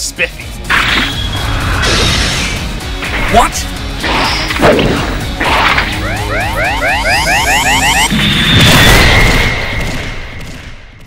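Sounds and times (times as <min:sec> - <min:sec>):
background music: 0:00.0 - 0:09.1.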